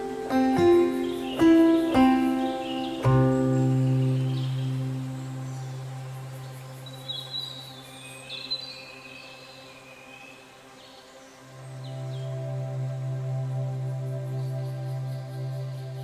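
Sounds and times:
bird chirps: 0.0s - 10.4s
ambient music chords: 0.0s - 16.0s.

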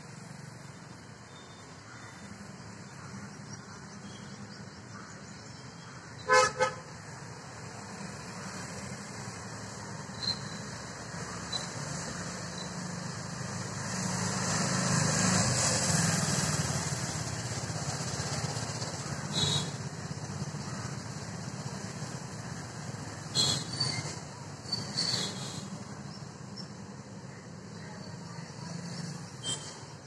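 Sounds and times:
vehicle horn tooting: 6.3s - 6.9s
vehicle passing: 13.4s - 18.8s.

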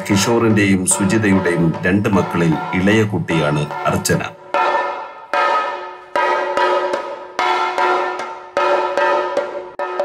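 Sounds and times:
drum struck with a stick: 0.0s - 10.0s.

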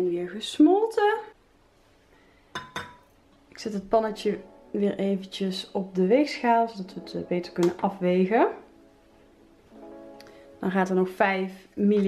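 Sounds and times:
metal pan clinking on scale: 2.6s - 3.1s.

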